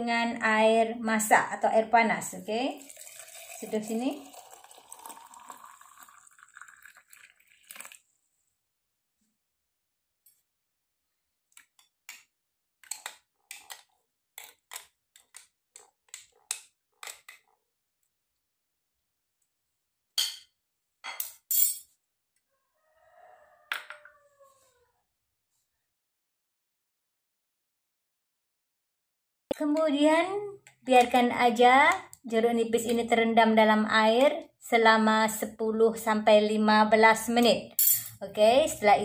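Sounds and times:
water pouring into glass jar: 0:02.7 - 0:08.1
spoon clinking against glass: 0:37.8 - 0:38.2.

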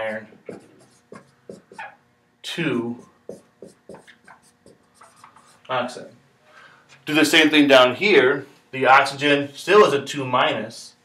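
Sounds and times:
marker writing on whiteboard: 0:00.5 - 0:02.0, 0:02.9 - 0:05.6.

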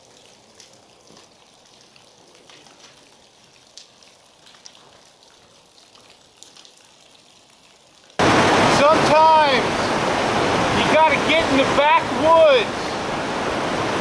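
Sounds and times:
water and ice ticking on ground: 0:00.0 - 0:08.2
meltwater dripping: 0:00.0 - 0:12.9
loud rushing water: 0:08.2 - 0:14.0.

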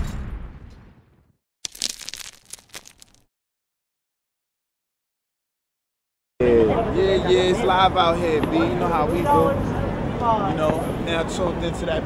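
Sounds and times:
explosion: 0:00.0 - 0:01.3
sharp crackling and snapping: 0:01.6 - 0:03.3.

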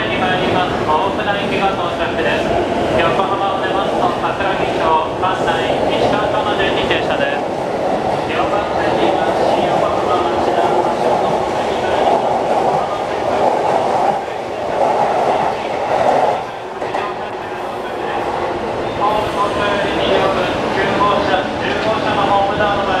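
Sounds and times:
electric train passing close: 0:00.0 - 0:23.0.

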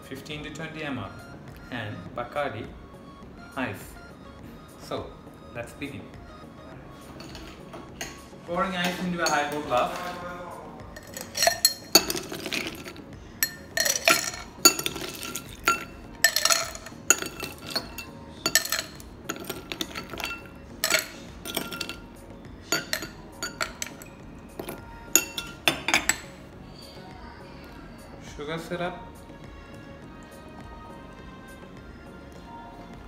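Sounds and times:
ice clinking on glass: 0:07.2 - 0:08.2, 0:11.0 - 0:26.4
spoon clinking on glass bowl: 0:07.2 - 0:08.2, 0:11.0 - 0:26.3.

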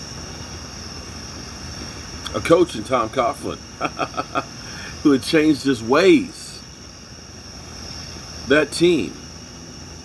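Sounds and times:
crickets trilling: 0:00.0 - 0:10.0
gas flame rushing rumble: 0:00.0 - 0:10.0.

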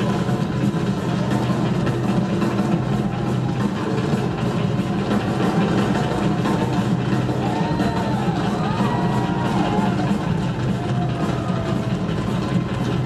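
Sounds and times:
rock drum solo: 0:00.0 - 0:13.0.

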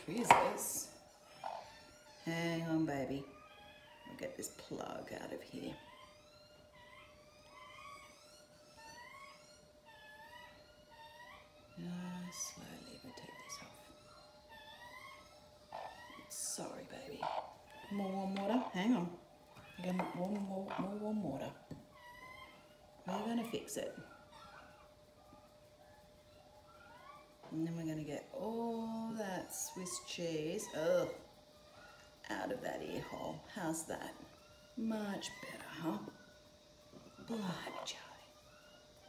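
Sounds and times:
hen whining softly: 0:00.0 - 0:39.0.

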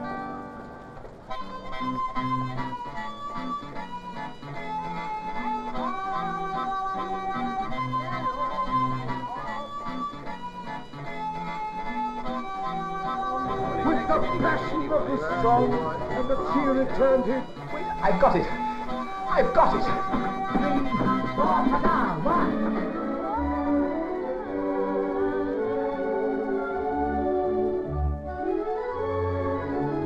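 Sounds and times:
plucked-string accompaniment: 0:00.0 - 0:23.4
harmonica tune: 0:01.3 - 0:25.3.

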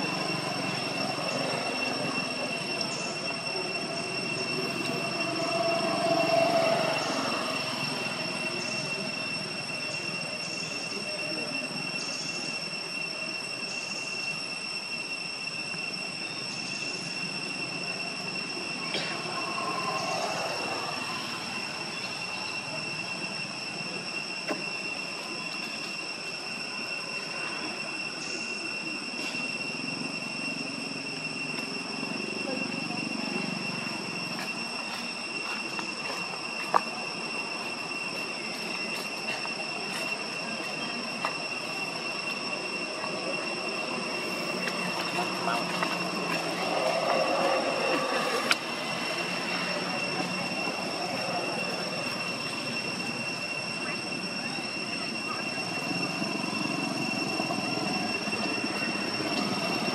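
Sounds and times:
high-pitched insect drone: 0:00.0 - 0:59.9.

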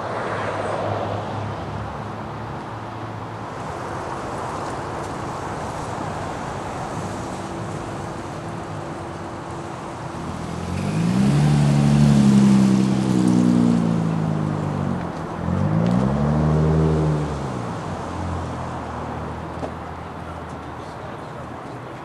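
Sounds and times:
car engine revving: 0:10.4 - 0:14.8, 0:15.4 - 0:18.3.

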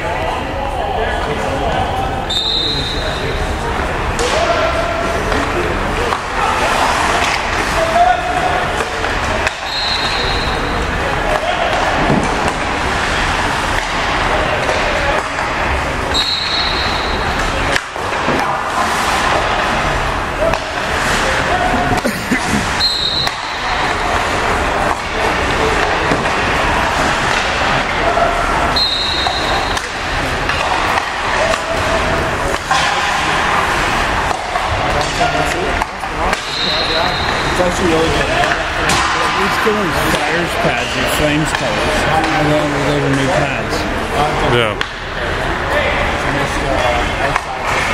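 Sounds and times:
indistinct voices: 0:00.0 - 0:47.9
hockey sticks and pucks clacking: 0:03.8 - 0:43.4, 0:44.2 - 0:47.9.

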